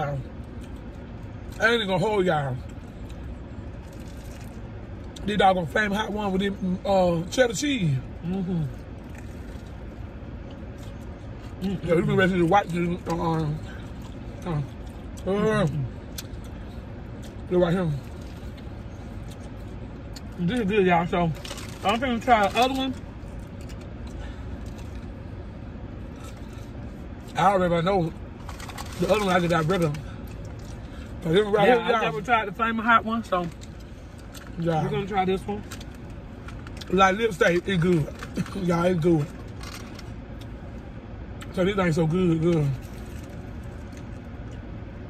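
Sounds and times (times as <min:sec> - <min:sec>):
car engine idling hum: 0:00.0 - 0:45.0
person chewing crispy food: 0:02.6 - 0:05.3, 0:08.1 - 0:27.4, 0:28.3 - 0:31.3.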